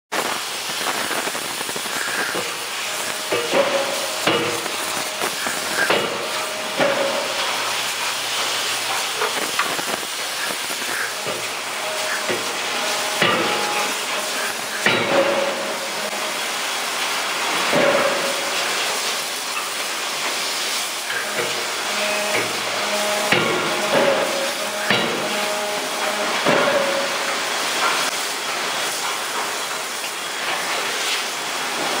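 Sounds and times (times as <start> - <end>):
steady hiss of shop noise: 0.1 - 32.0
forging hammer striking hot metal: 2.2 - 19.6, 21.0 - 28.2.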